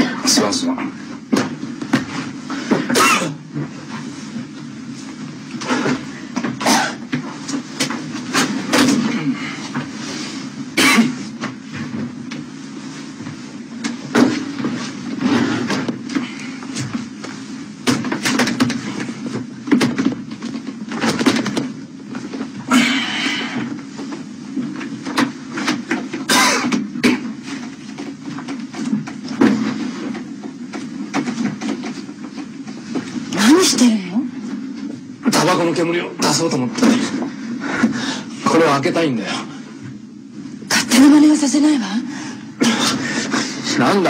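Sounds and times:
steady low hum: 0:00.0 - 0:44.0.

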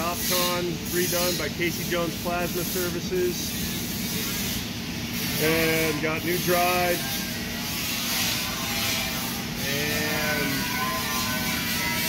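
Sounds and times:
running machinery hiss and hum: 0:00.0 - 0:12.0.

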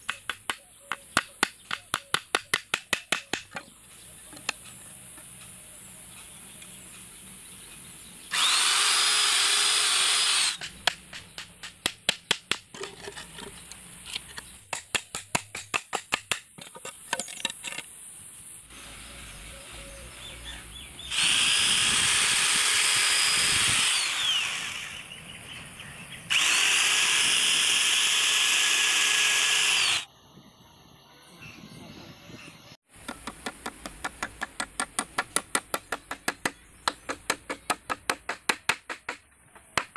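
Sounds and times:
electric power tool running: 0:08.3 - 0:10.6, 0:21.1 - 0:25.1, 0:26.3 - 0:30.1.

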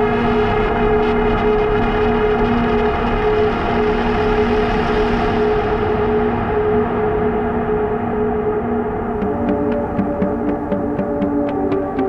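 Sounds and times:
synthesizer drone chord: 0:09.2 - 0:12.0.

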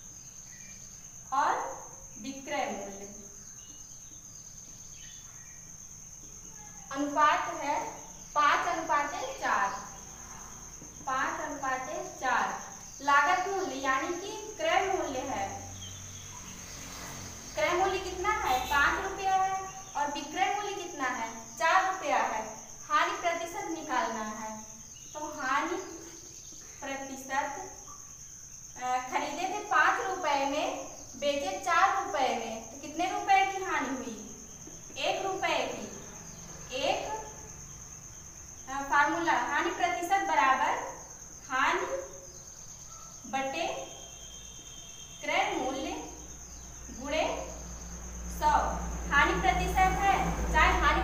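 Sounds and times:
woman speaking: 0:06.9 - 0:09.9, 0:11.1 - 0:15.7, 0:17.6 - 0:24.6, 0:28.8 - 0:34.4, 0:35.0 - 0:36.0, 0:36.7 - 0:37.3, 0:43.3 - 0:43.9, 0:45.2 - 0:46.2, 0:46.9 - 0:47.5, 0:48.4 - 0:51.0.

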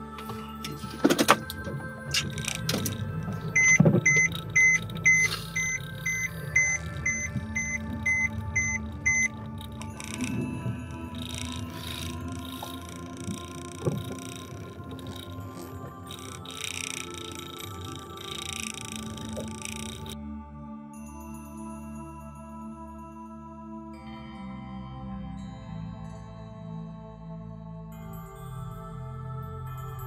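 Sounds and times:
background music: 0:00.0 - 0:30.0
short electronic beeps: 0:03.6 - 0:10.4.

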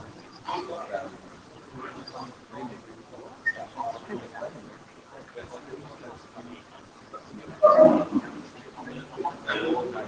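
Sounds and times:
faint background murmur: 0:00.0 - 0:10.0.

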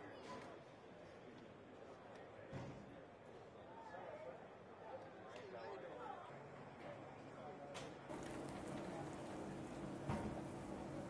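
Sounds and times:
exhibition hall noise: 0:00.0 - 0:11.0.

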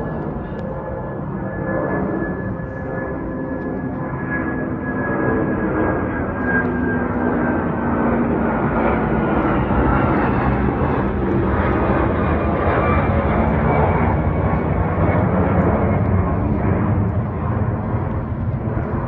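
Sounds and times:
jet airliner roaring overhead: 0:00.0 - 0:19.0
jet engine whine: 0:00.0 - 0:19.0.

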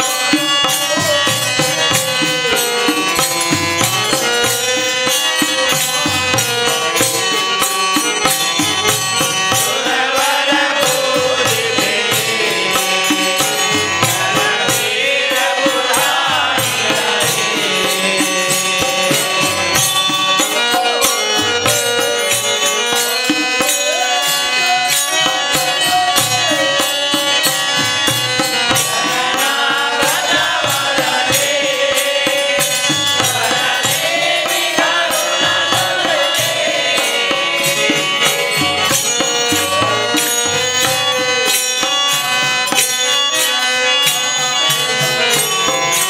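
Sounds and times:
men singing devotional song: 0:00.0 - 0:46.0.

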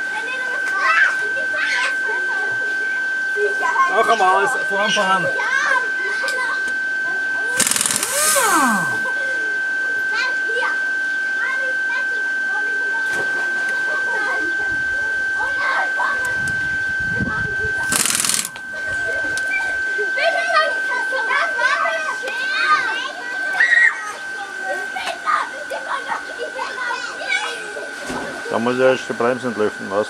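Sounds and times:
pneumatic impact wrench bursts: 0:07.5 - 0:09.1, 0:17.8 - 0:18.6
high-pitched whine: 0:07.6 - 0:09.1.

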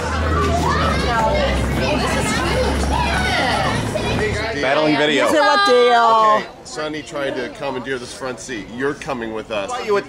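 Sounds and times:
van engine rumble: 0:00.0 - 0:04.6
voices talking over one another: 0:00.0 - 0:10.0.

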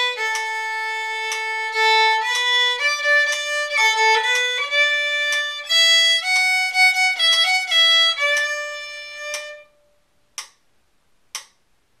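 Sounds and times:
clock ticking: 0:00.0 - 0:09.7, 0:10.3 - 0:10.6, 0:11.3 - 0:11.6.

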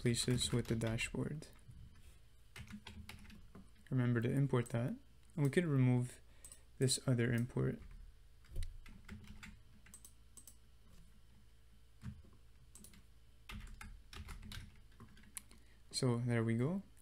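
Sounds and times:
typing on computer keyboard: 0:02.6 - 0:03.6, 0:07.8 - 0:10.6, 0:12.0 - 0:15.5.

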